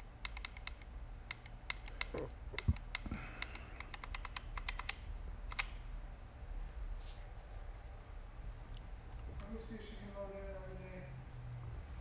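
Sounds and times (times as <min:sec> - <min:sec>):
low room hum: 0:00.0 - 0:12.0
computer keyboard typing: 0:00.2 - 0:05.8.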